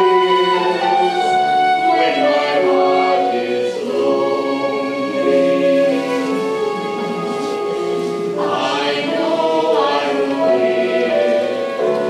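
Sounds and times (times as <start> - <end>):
choir singing held notes: 0.0 - 12.0.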